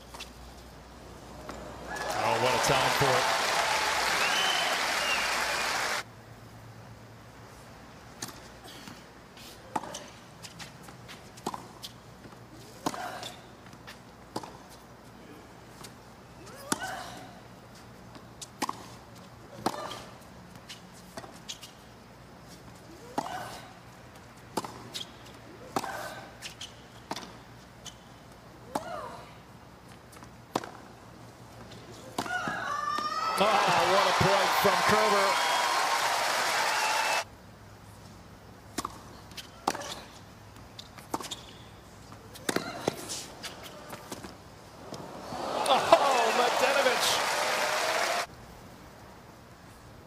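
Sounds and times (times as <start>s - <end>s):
tennis ball bouncing: 24.5s - 25.0s, 38.7s - 40.0s, 41.0s - 41.5s, 42.3s - 43.2s
racket hitting tennis ball: 42.3s - 43.3s.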